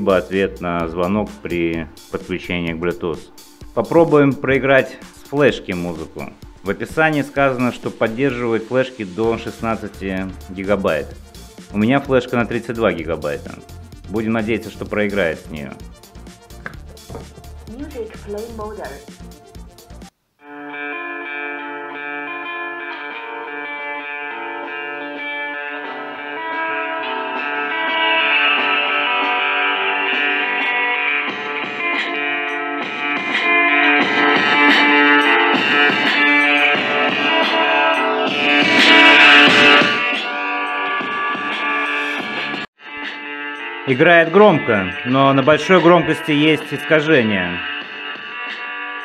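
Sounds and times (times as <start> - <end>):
guitar music from small speaker: 20.4 - 49.0.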